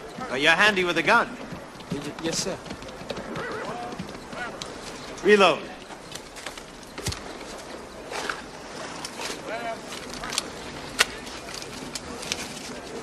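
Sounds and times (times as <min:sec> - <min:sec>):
faint voices murmuring: 0:00.0 - 0:13.0.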